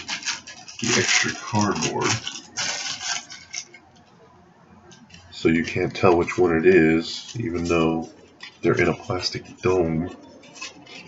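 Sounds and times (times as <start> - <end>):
cardboard packaging rustling: 0.0 - 4.1, 4.9 - 11.0.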